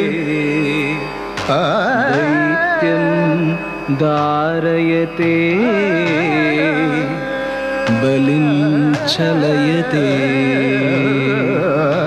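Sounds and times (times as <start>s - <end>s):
person singing ornamented long notes: 0.0s - 12.0s.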